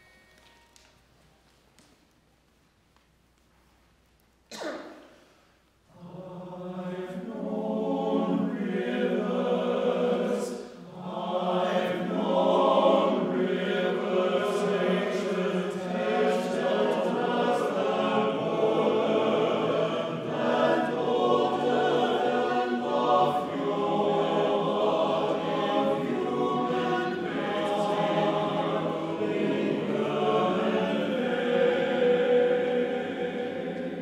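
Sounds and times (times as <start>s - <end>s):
chamber choir singing: 5.9s - 34.0s.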